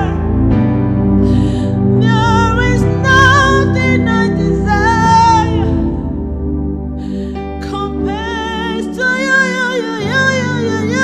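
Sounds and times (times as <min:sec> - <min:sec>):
gospel song sustained chords: 0:00.0 - 0:11.0.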